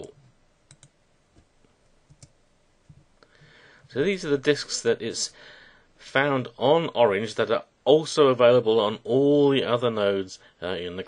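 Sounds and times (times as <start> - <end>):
mouse and keyboard clicks: 0.7 - 1.0.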